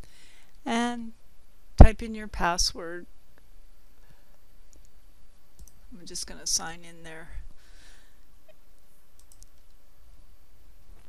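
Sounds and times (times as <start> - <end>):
low background hum: 0.0 - 11.0
computer mouse clicks: 4.7 - 5.0, 5.6 - 5.8, 8.8 - 9.8.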